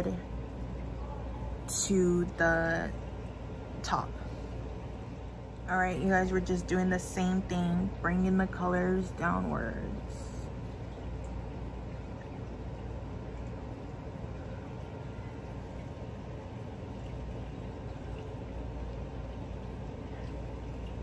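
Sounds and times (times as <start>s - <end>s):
low background hum: 0.0s - 21.0s.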